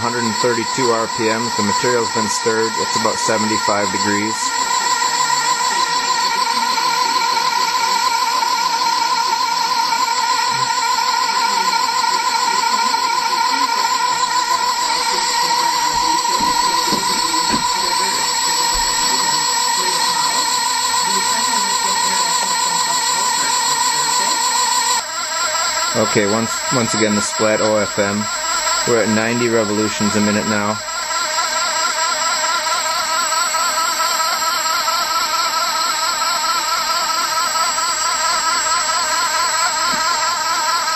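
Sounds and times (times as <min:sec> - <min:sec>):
high-pitched electric motor whine: 0:00.0 - 0:40.9.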